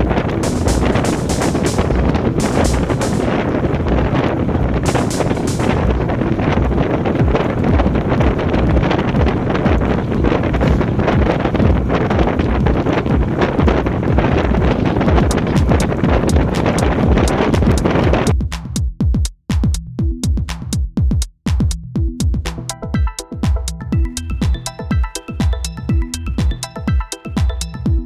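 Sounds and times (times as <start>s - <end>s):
wind rushing over microphone: 0.0s - 18.4s.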